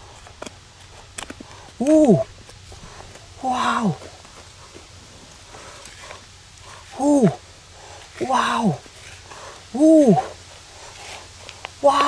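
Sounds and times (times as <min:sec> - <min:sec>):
trowel scraping dry soil: 0:04.5 - 0:07.0, 0:07.8 - 0:09.6, 0:10.4 - 0:12.0.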